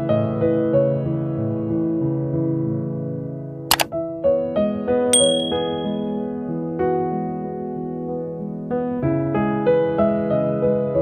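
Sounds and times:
notification bell ding: 5.2 - 6.0.

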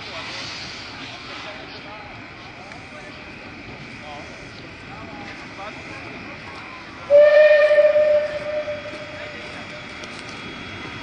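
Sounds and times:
steam locomotive whistle blast: 7.1 - 9.2.

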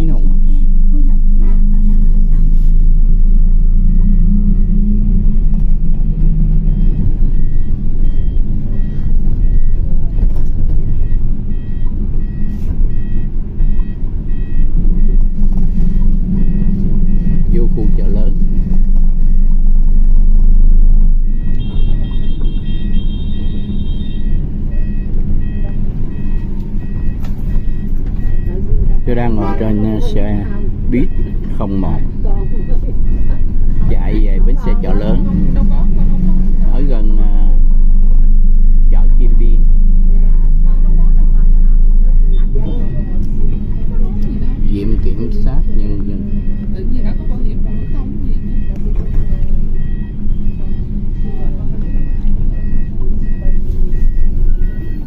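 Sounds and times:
bus engine and road rumble: 0.0 - 55.0
electronic warning beep: 0.0 - 55.0
high-pitched beep: 0.0 - 55.0.

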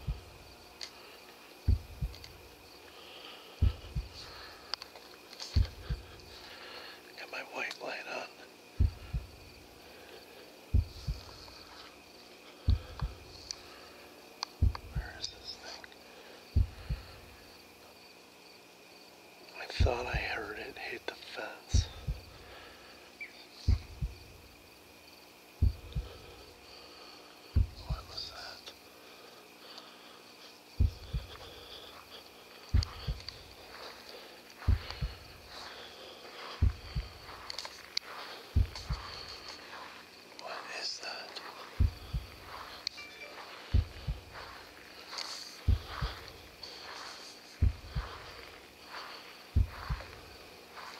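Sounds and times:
dull low thumps: 0.0 - 0.6, 1.6 - 2.5, 3.6 - 4.5, 5.5 - 6.4, 8.7 - 9.6, 10.7 - 11.6, 12.6 - 13.3, 14.6 - 15.4, 16.6 - 17.4, 19.8 - 20.2, 21.7 - 22.4, 23.7 - 24.5, 25.6 - 26.4, 27.6 - 28.2, 30.8 - 31.8, 32.7 - 33.6, 34.6 - 35.6, 36.6 - 37.5, 38.5 - 39.4, 41.8 - 42.7, 43.7 - 44.6, 45.6 - 46.6, 47.6 - 48.5, 49.5 - 50.5
crickets chirping: 0.0 - 50.9.

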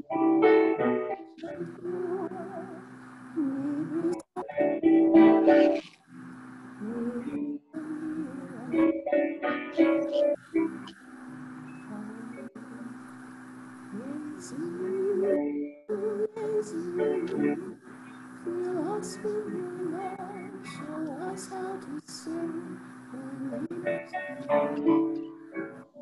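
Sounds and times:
keyboard chords: 0.0 - 2.8, 7.2 - 12.8, 23.6 - 26.0
woman singing a hymn: 1.4 - 2.8, 3.4 - 4.6, 6.8 - 9.0, 13.9 - 17.8, 18.4 - 25.2.

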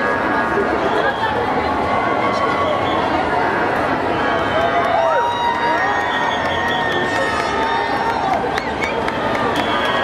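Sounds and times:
crowd cheering and shouting: 0.0 - 10.0
whoops: 4.2 - 10.0.

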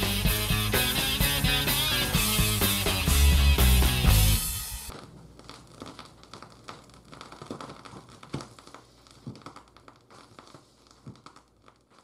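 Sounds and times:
vinyl crackles and pops: 0.0 - 12.0.

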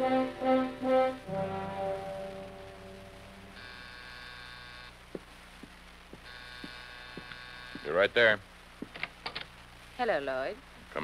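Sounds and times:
low recording hum: 0.0 - 11.0
footsteps walking: 5.1 - 7.9.

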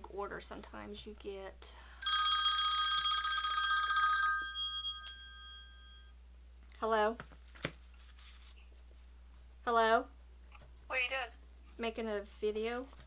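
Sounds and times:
phone ringtone bell-like tones: 2.0 - 6.2.

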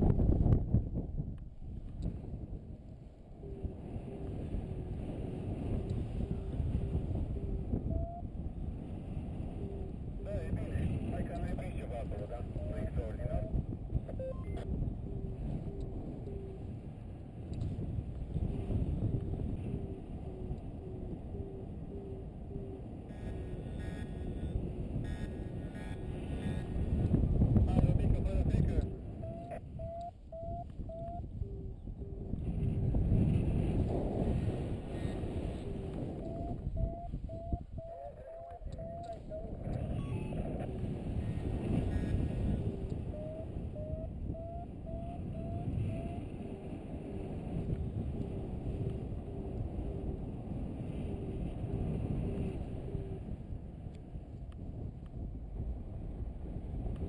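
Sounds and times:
wind rushing over microphone: 0.0 - 57.0
variometer beeping: 5.7 - 8.4, 12.5 - 16.7, 19.0 - 26.0, 28.4 - 32.6, 35.5 - 46.6.

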